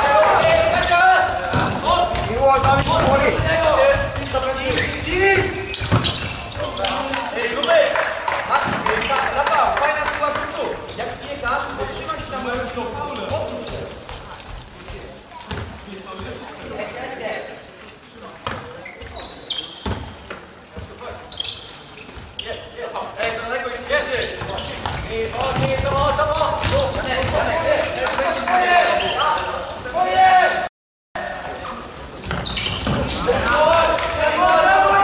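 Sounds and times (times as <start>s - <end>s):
players shouting: 0.0s - 10.6s, 33.1s - 35.0s.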